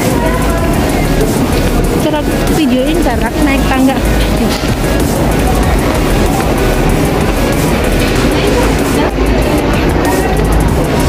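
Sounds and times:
escalator mechanical rumble: 0.0 - 11.0
music playing: 0.0 - 11.0.

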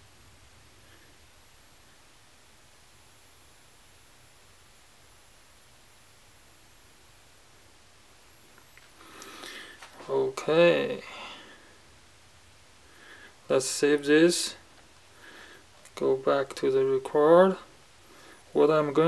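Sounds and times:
faint low hum and hiss: 0.0 - 19.0.

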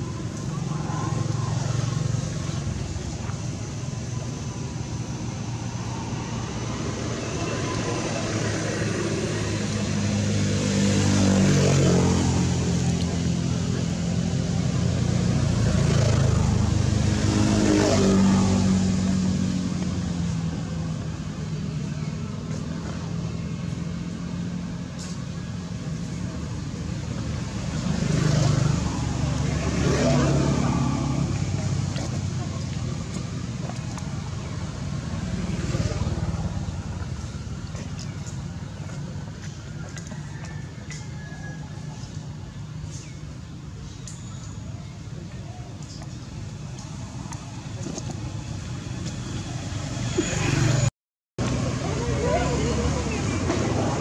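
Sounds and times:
vehicles passing: 0.0 - 54.0.

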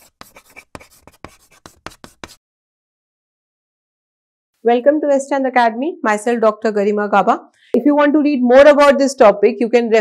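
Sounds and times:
chalk writing on blackboard: 0.0 - 2.4.

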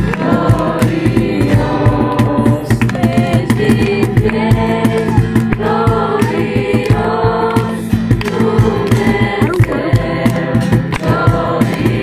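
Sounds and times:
group singing: 0.0 - 12.0
guitar: 0.0 - 12.0
percussion beat: 0.0 - 12.0.

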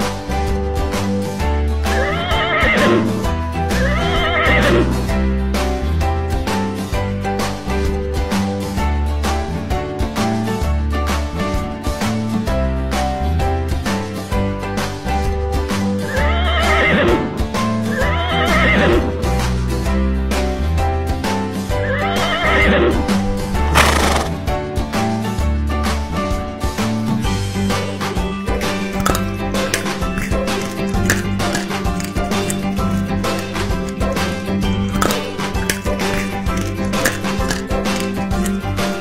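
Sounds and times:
upbeat background music: 0.0 - 39.0
horse whinnying: 1.8 - 5.1, 16.0 - 19.2, 21.8 - 24.5.

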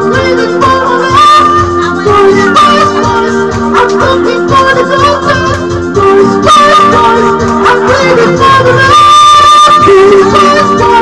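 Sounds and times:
backing track with steady beat: 0.0 - 11.0
man singing karaoke: 0.0 - 11.0.

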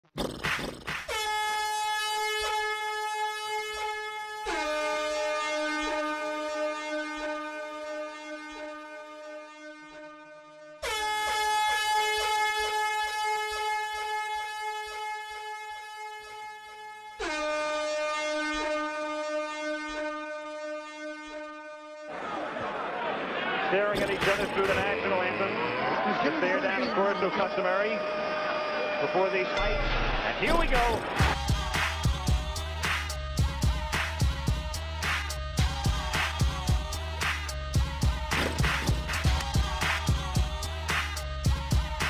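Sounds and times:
buzzy horn tones: 0.9 - 22.2, 23.8 - 42.0.

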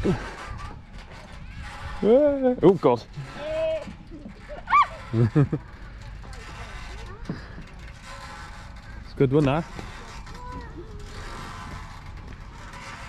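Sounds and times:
outdoor background noise: 0.0 - 13.0
person squealing: 4.7 - 5.0.

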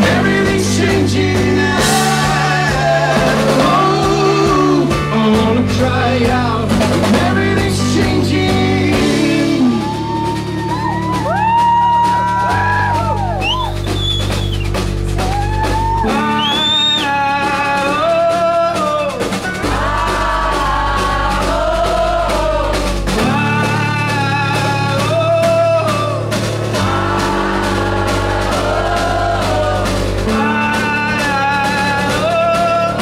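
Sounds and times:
live rock band playing: 0.0 - 33.0.

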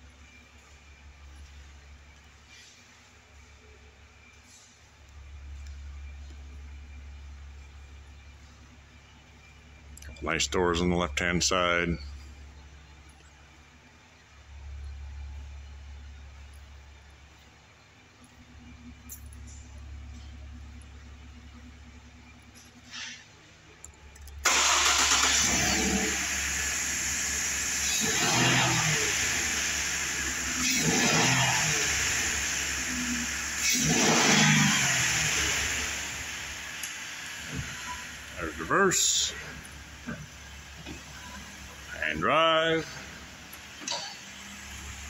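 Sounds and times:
truck engine starting and revving: 24.2 - 45.0.

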